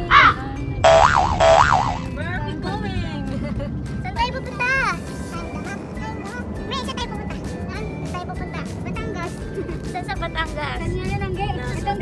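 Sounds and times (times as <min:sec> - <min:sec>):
cartoon boing: 0:00.8 - 0:02.1.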